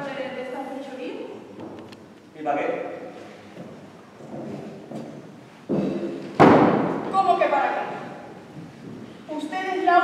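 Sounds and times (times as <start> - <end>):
loud thump: 5.7 - 7.2.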